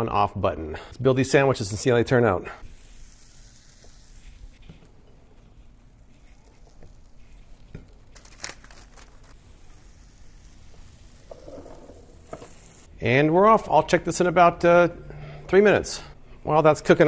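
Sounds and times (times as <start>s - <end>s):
grill plate hiss and crackle: 2.6s - 12.9s.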